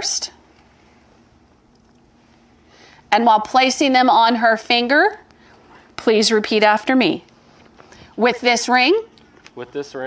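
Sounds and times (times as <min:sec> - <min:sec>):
background hiss: 0:00.0 - 0:03.7.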